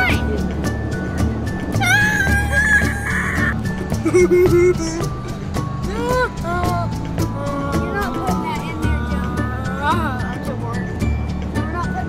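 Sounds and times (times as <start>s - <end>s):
music playing: 0.0s - 12.0s
child squealing: 1.8s - 5.0s.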